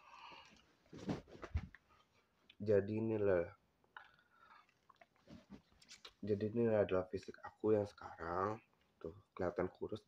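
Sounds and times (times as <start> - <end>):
soft movement noises: 0.2 - 2.8, 4.5 - 9.2.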